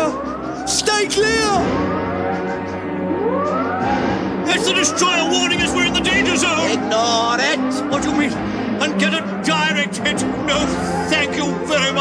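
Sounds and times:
background music: 0.0 - 12.0
warning siren wailing: 0.0 - 12.0.

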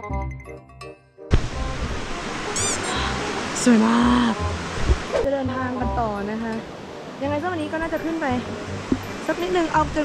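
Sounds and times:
music track: 0.0 - 10.0
rushing outdoor noise: 1.3 - 5.3.

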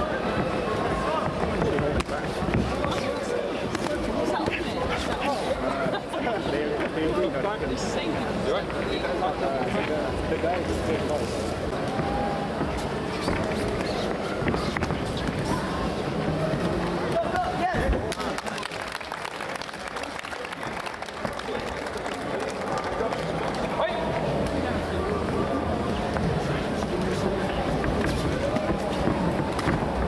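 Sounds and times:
footwork on ring canvas: 0.0 - 6.0, 8.4 - 18.2, 22.4 - 30.0.

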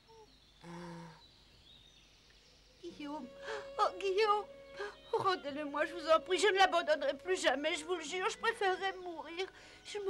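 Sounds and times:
faint soundtrack ambience: 0.1 - 10.0.

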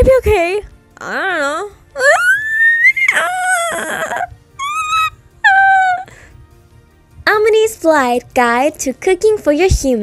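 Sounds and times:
faint background music: 0.0 - 10.0
high-pitched whimpering voice: 1.0 - 6.1.

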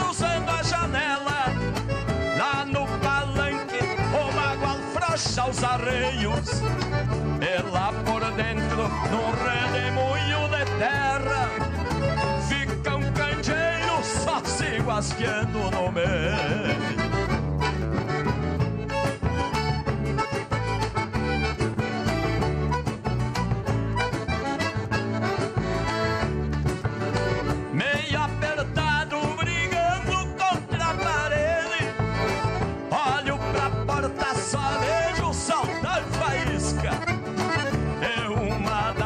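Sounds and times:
piano accordion melody: 0.0 - 39.0.

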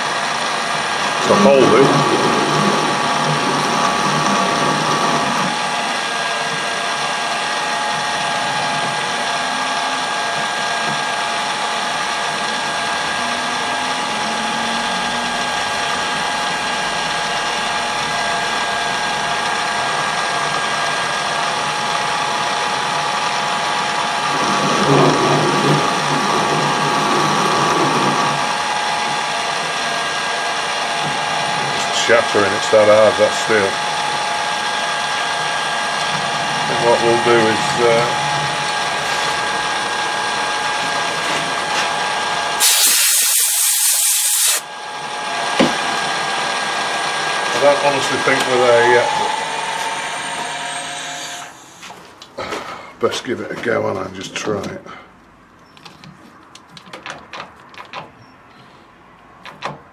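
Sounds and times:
metal lathe gear whine: 0.0 - 51.9.

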